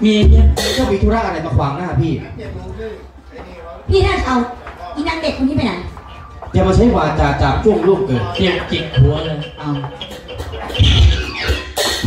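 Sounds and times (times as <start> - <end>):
drum thumps: 8.4 - 12.0.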